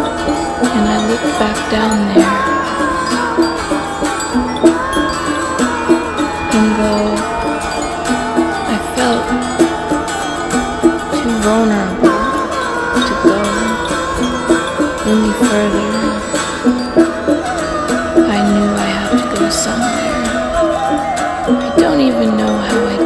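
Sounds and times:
instrumental music with steady beat: 0.0s - 23.0s.

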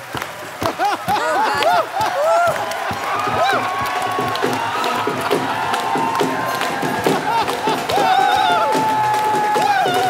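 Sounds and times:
audience cheering: 0.0s - 10.0s
drums in quick beat: 2.4s - 10.0s.

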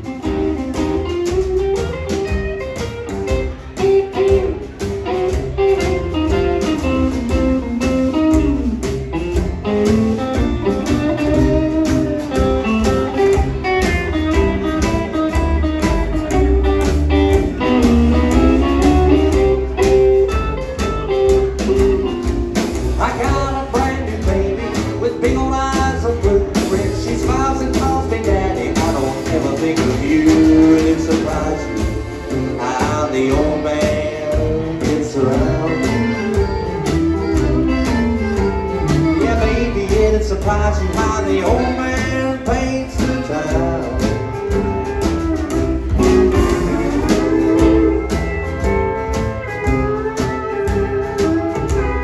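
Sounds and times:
drums with steady beat: 0.0s - 52.0s
electric and acoustic guitars: 0.0s - 52.0s
steel guitar: 0.0s - 52.0s
upright bass: 0.0s - 52.0s
accordion: 28.3s - 42.2s, 43.2s - 52.0s.

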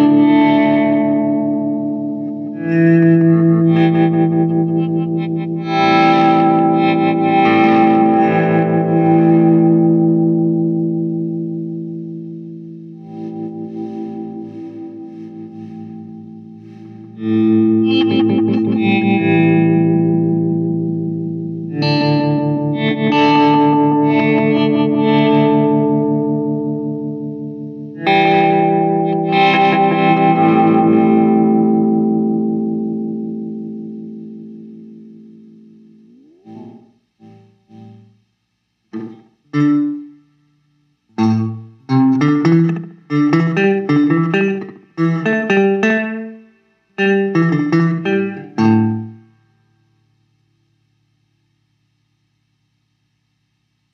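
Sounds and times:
chopped guitar stabs: 0.0s - 40.2s, 40.9s - 49.4s
distorted electric guitar chords: 0.0s - 53.9s.

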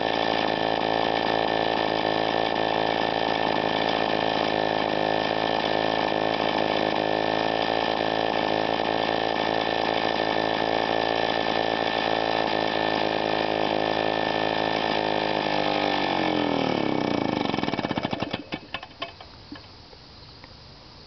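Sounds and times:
two-stroke engine running: 0.0s - 19.2s.

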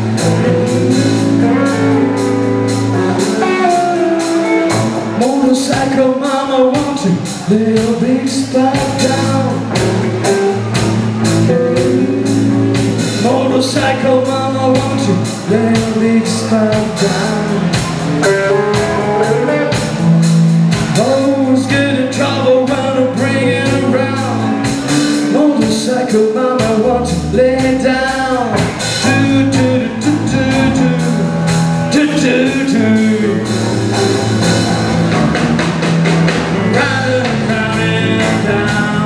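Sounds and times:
electric guitar lick: 0.0s - 5.2s, 17.6s - 21.0s
bass guitar: 0.0s - 39.0s
drum kit steady beat: 0.0s - 39.0s
electric guitars: 0.0s - 39.0s.

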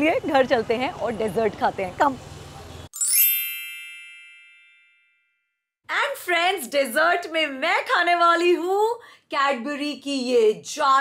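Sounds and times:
bright chime: 3.0s - 5.4s.

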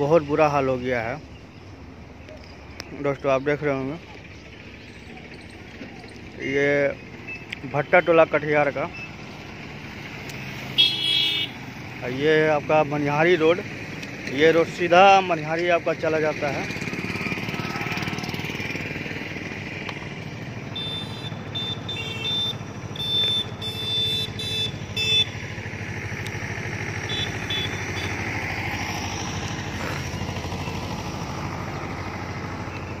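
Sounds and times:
motorcycle engine running: 1.2s - 33.0s.

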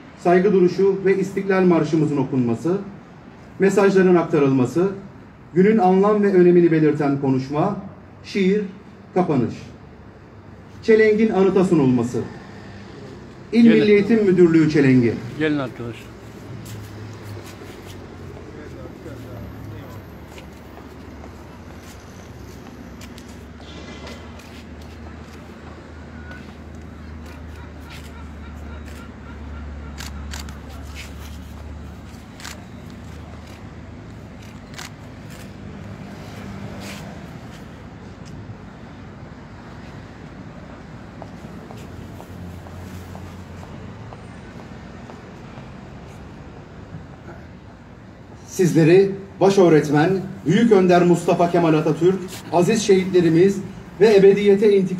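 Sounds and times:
traffic rumble: 0.0s - 54.9s
murmur of people talking: 24.2s - 35.6s.

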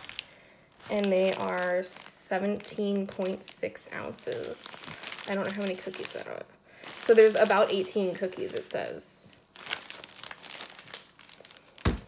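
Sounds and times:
plastic wrapper crinkling: 0.0s - 12.0s.

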